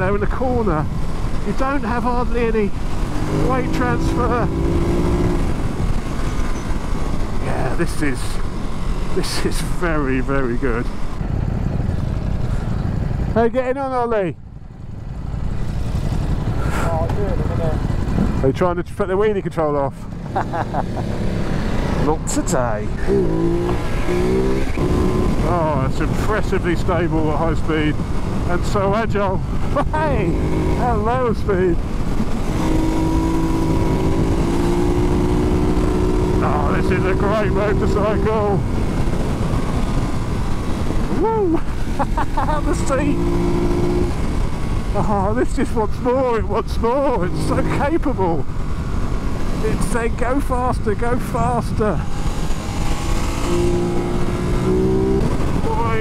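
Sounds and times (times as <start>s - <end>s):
motorcycle engine running: 0.0s - 56.0s
wind noise: 20.8s - 56.0s.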